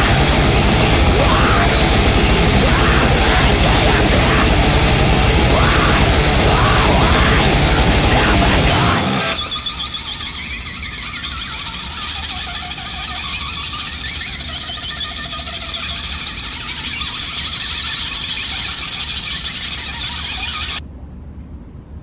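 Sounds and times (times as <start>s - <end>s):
eerie drone: 0.0s - 20.8s
short warbling squeals: 0.0s - 20.8s.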